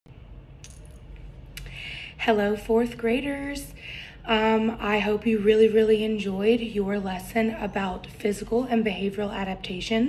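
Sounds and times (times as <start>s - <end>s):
low steady hum: 0.1s - 10.0s
faint metallic clinks: 0.6s - 1.1s.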